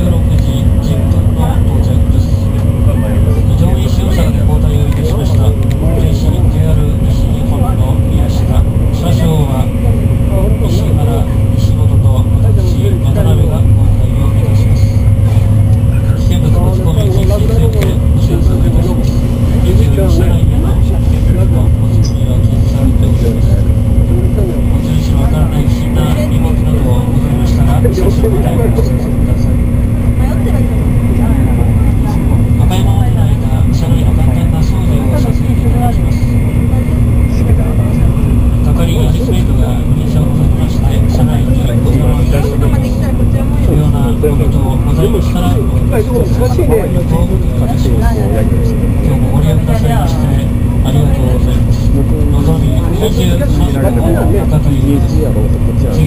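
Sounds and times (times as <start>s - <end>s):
constant hum: 0.0s - 56.0s
train cabin rumble: 0.0s - 56.0s.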